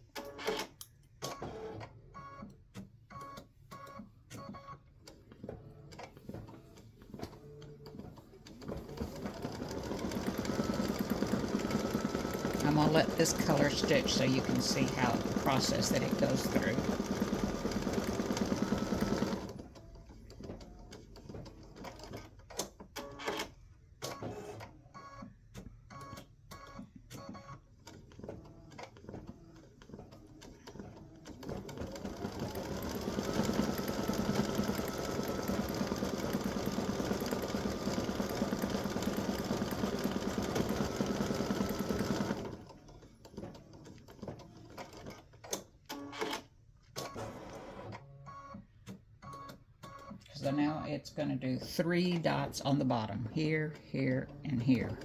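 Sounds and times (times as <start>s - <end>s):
embroidery machine stitching: 7.9s - 23.5s, 27.9s - 46.4s.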